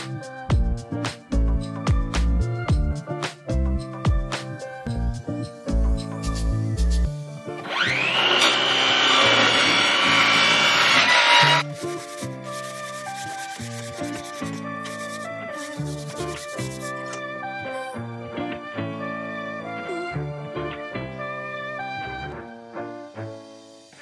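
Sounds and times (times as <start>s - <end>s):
background music: 0.0s - 24.0s
sanding plywood: 8.4s - 17.2s.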